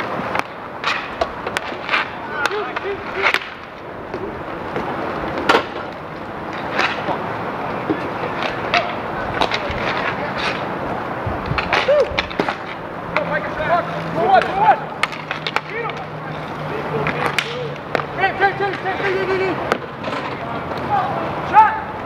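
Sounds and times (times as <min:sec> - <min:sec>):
hockey sticks clacking on puck: 0:00.0 - 0:10.8, 0:11.4 - 0:21.6
inline skate wheels rolling: 0:00.0 - 0:21.6.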